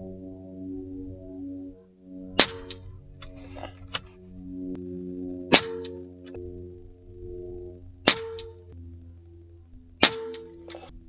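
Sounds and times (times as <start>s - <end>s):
background music: 0.0s - 11.0s
air rifle shots cracking: 2.4s - 4.0s, 5.5s - 6.0s, 8.0s - 8.6s, 10.0s - 10.9s.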